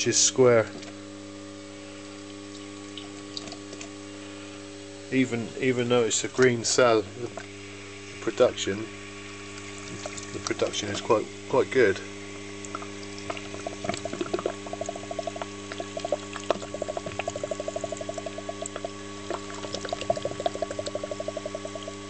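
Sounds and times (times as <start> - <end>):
electrical hum: 0.0 - 22.0
gas bubbling under water: 9.3 - 22.0.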